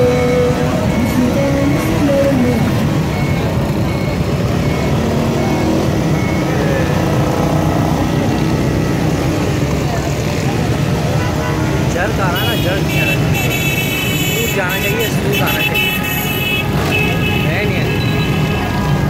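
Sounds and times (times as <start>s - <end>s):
car and motorcycle engines: 0.0s - 19.0s
crowd voices: 0.0s - 19.0s
vehicle horn: 11.2s - 18.8s.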